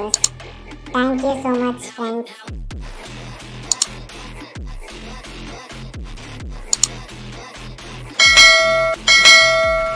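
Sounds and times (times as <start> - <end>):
background music with sliding bass: 0.0 - 9.9
ringing bell chime: 8.2 - 9.9.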